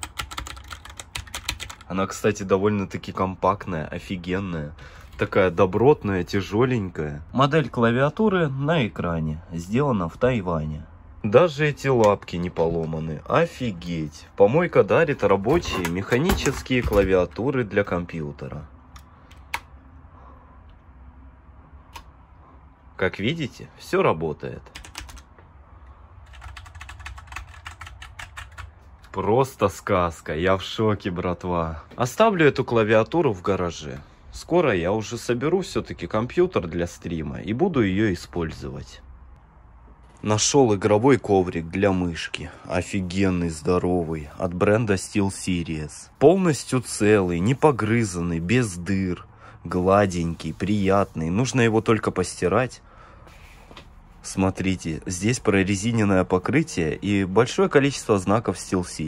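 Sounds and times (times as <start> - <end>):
mechanical keyboard typing: 0.0 - 1.9, 24.7 - 25.3, 26.2 - 28.7.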